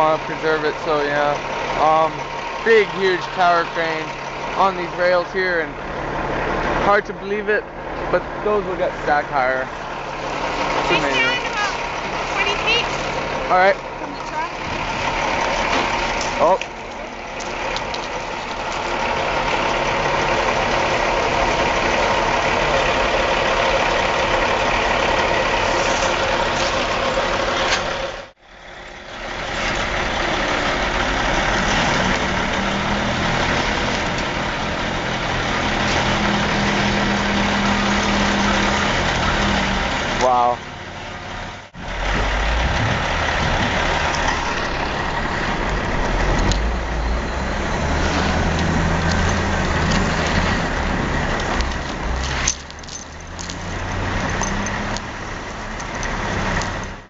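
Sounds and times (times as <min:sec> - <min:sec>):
diesel engine idling: 0:00.0 - 0:57.0
wheel loader diesel engine: 0:00.0 - 0:57.0.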